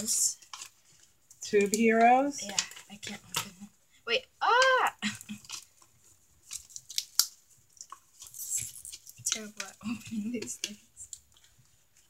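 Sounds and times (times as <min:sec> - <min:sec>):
plastic tube clicking and crinkling: 0:00.0 - 0:03.7, 0:04.4 - 0:12.0.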